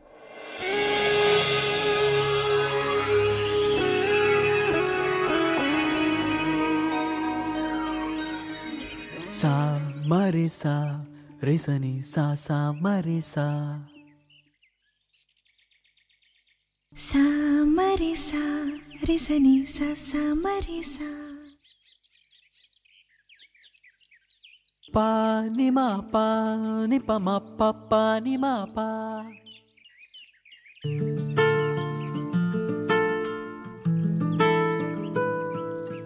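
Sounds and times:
music: 0.0s - 11.4s, 30.8s - 36.0s
bird trill: 2.7s - 11.1s, 13.5s - 16.8s, 21.4s - 25.7s, 28.6s - 33.1s, 34.0s - 36.0s
faint bird chirps: 18.0s - 32.4s.

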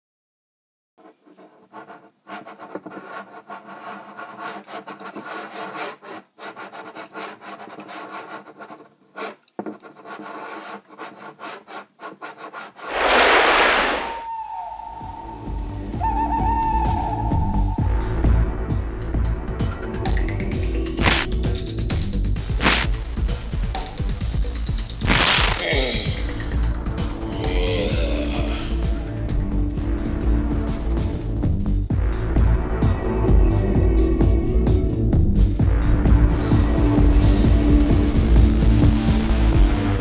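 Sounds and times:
pencil scratching on paper: 1.0s - 13.8s
loud whoosh: 12.9s - 15.8s
eerie music: 14.1s - 18.9s, 26.1s - 30.6s.

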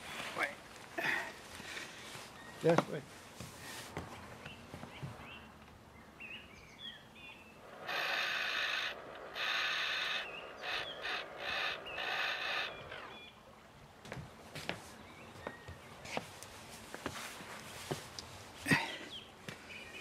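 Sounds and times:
birds chirping faintly: 0.0s - 17.1s, 18.2s - 20.0s
harsh rasping sounds: 7.7s - 13.1s.

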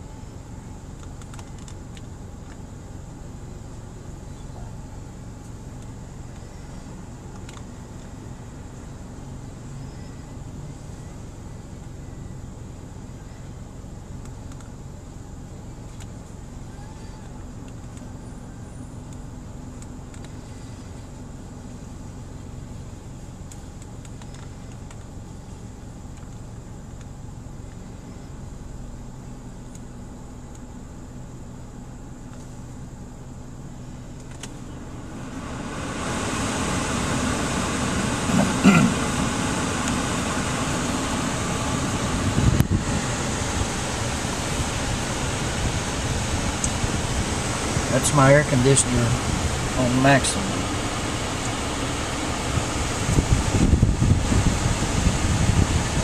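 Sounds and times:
car engine idling: 0.0s - 56.0s
air conditioning blower rushing: 34.6s - 56.0s.

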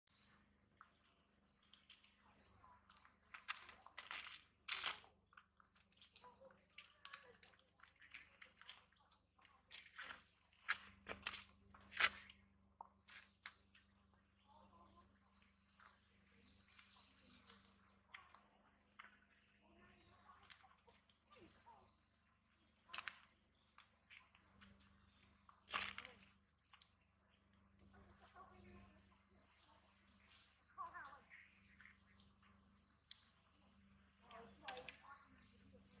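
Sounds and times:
small birds chirping rapidly: 0.0s - 36.0s.

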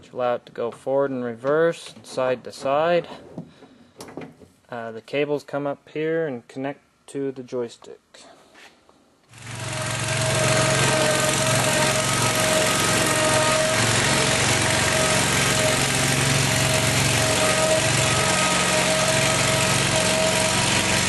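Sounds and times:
hydraulic whine: 9.3s - 21.0s.

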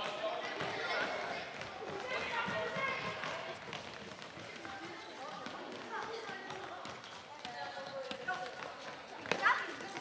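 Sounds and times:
footsteps running on hall floor: 0.0s - 10.0s.

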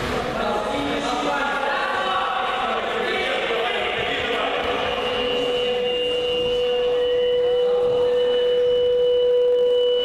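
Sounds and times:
large hall background noise: 0.0s - 10.0s
steady held tone: 0.0s - 10.0s.

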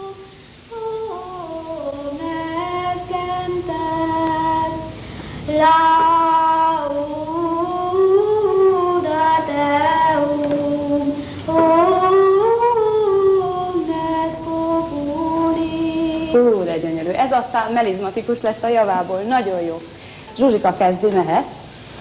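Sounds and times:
boy singing solo: 0.0s - 16.4s.

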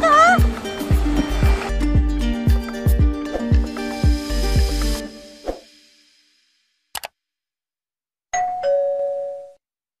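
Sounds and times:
ding-dong bell chime: 8.4s - 9.6s.

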